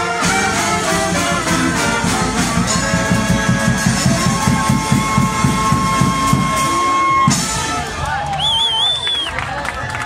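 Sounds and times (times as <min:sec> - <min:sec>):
steady drum beat: 0:00.0 - 0:08.0
brass band playing: 0:00.0 - 0:08.3.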